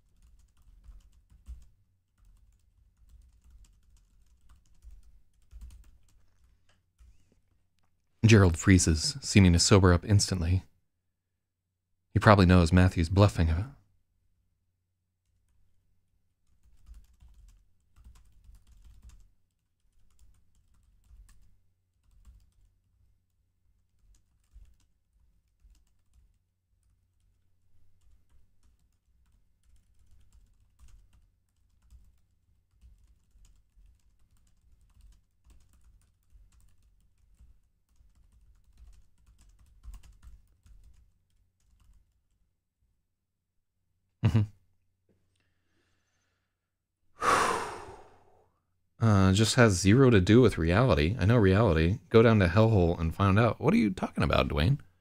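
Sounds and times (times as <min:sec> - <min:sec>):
typing on computer keyboard: 0:00.0 - 0:07.3, 0:16.4 - 0:42.5.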